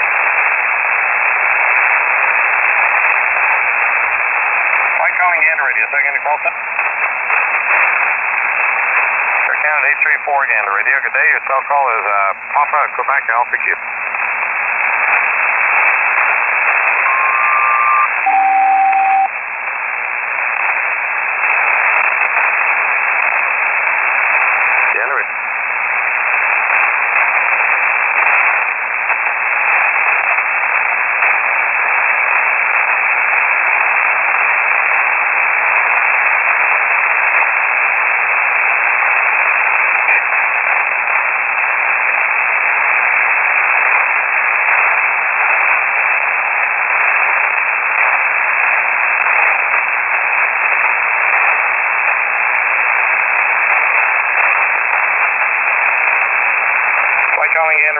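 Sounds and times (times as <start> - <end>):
paired radio tones: 0.0 - 57.9
radio static hiss: 0.0 - 57.9.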